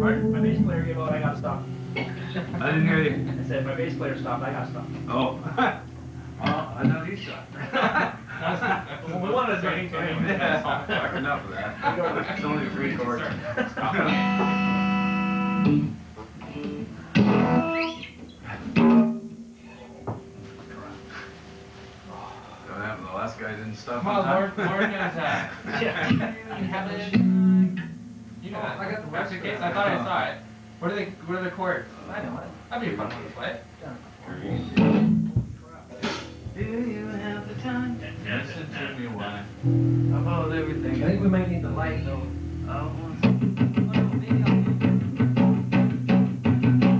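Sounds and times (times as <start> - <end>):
electric guitar single notes: 0.0 - 8.3, 14.0 - 22.5, 26.1 - 32.0, 33.6 - 46.9
people talking: 0.0 - 14.6, 19.6 - 21.3, 22.1 - 27.8, 28.4 - 44.9.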